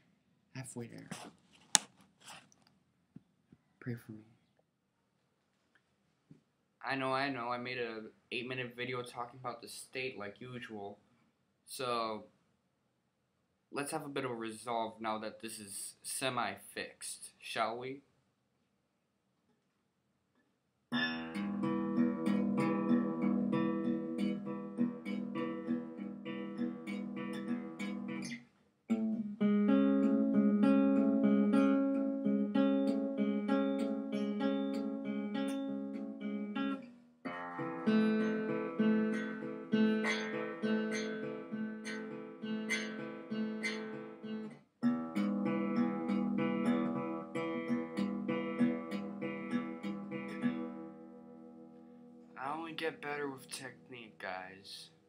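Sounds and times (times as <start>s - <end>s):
acoustic guitar plucked notes: 20.9s - 54.1s.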